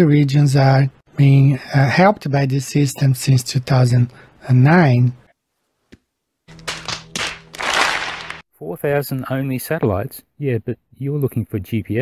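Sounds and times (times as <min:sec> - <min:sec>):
crowd slapping foreheads: 0:06.5 - 0:08.4.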